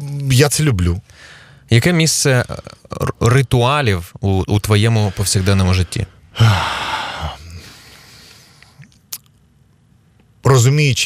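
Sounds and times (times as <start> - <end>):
man sighing: 6.3 - 8.2.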